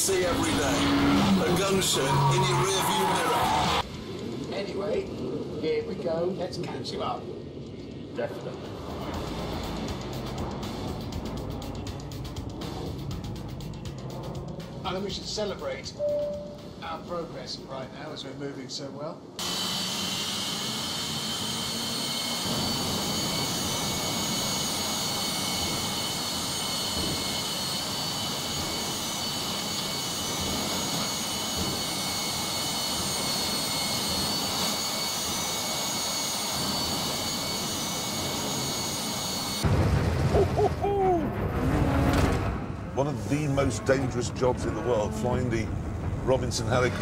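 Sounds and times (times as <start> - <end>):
gas turbine engine roar: 0.0 - 18.2, 19.2 - 39.8, 40.8 - 47.0
high-pitched turbine whine: 0.0 - 39.7.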